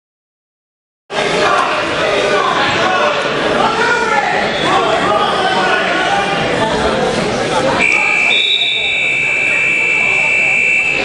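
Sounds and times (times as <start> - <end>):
voices of people: 1.1 - 11.0
high-pitched electronic buzzer: 7.8 - 11.0.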